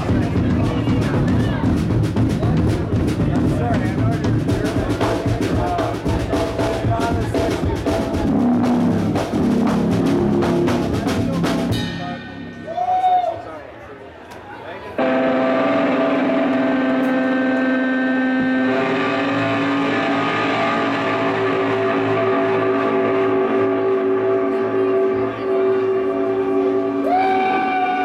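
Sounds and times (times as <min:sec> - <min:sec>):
distorted electric guitar and bass: 0:00.0 - 0:12.7, 0:15.0 - 0:28.0.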